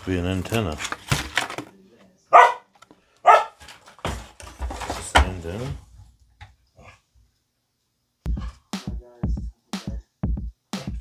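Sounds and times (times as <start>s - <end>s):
dog barking: 2.3s - 3.6s.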